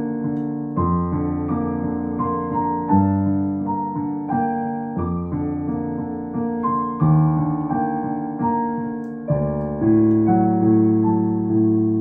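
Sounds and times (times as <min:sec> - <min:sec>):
gentle piano music: 0:00.0 - 0:12.0.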